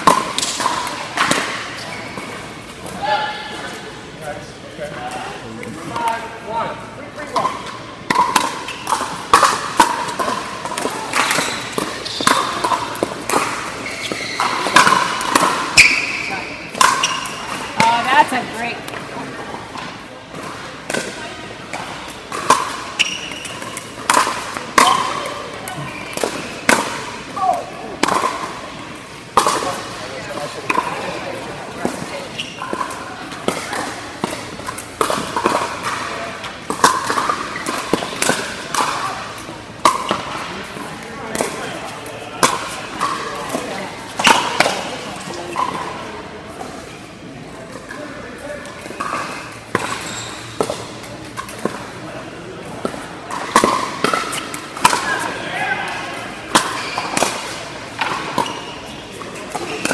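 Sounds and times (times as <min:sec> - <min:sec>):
murmur of voices: 0:00.0 - 0:59.9
ball bouncing on court: 0:07.3 - 0:19.0, 0:19.8 - 0:28.6, 0:31.8 - 0:40.6, 0:52.8 - 0:55.3
paddles hitting plastic ball: 0:08.1 - 0:16.0, 0:21.7 - 0:28.5, 0:31.8 - 0:40.6, 0:52.7 - 0:55.3.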